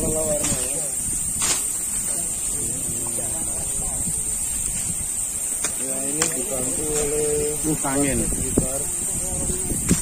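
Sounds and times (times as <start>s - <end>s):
insects droning: 0.0s - 10.0s
voices talking quietly: 0.0s - 10.0s.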